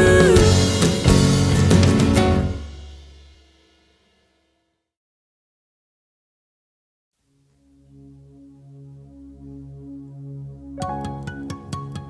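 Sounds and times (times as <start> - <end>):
rock band final chord ringing: 0.0 - 3.4.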